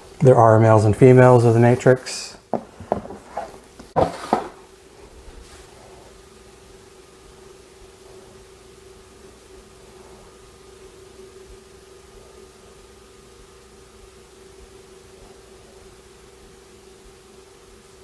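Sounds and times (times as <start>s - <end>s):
faint hiss: 0.0s - 18.0s
faint rustles from handling snake: 2.7s - 6.3s.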